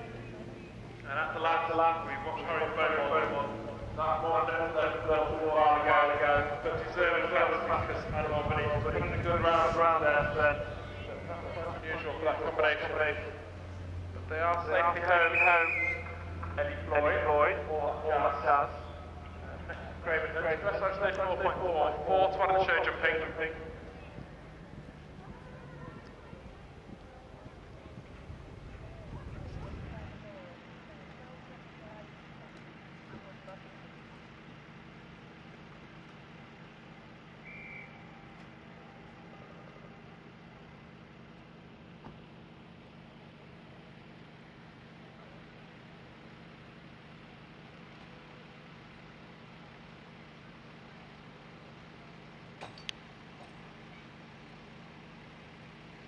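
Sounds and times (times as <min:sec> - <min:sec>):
steady low hum: 0:00.0 - 0:56.0
man narrating: 0:01.1 - 0:13.4, 0:14.2 - 0:18.9, 0:19.5 - 0:23.8.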